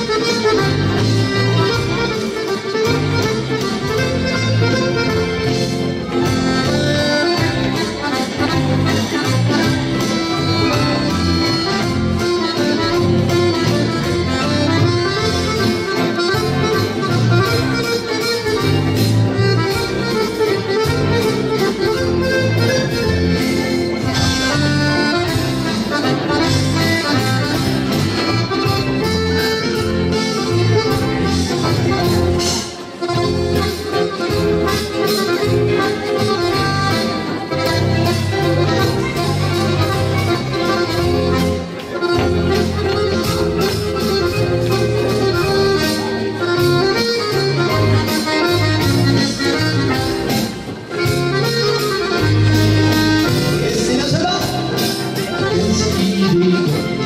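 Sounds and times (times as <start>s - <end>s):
button accordion melody: 0.0s - 57.0s
rhythmic bass accompaniment: 0.0s - 57.0s.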